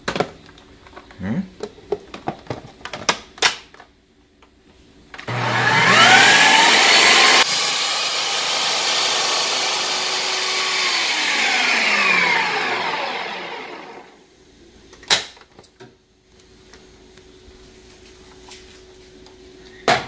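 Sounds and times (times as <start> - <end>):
food processor motor whine: 5.2 - 14.2
blade grinding peanuts: 5.3 - 14.1.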